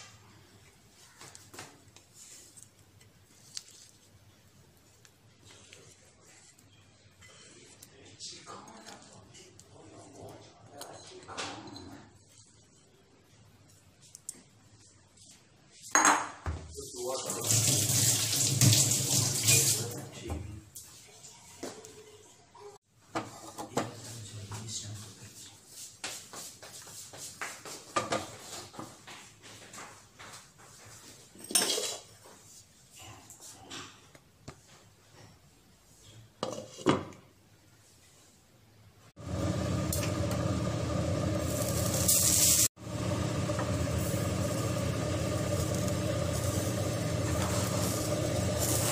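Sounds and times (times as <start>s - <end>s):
tap water running into sink: 17.2s - 20.1s, 43.3s - 48.9s.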